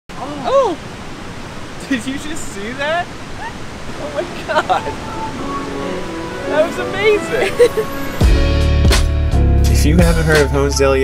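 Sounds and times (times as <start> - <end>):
creek water flowing: 0.1 - 8.8
person exclaiming: 0.2 - 0.8.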